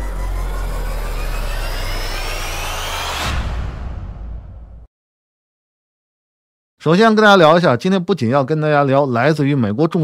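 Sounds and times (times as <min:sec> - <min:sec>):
deep steady rumble: 0:00.0 - 0:04.8
rising whoosh: 0:00.0 - 0:04.9.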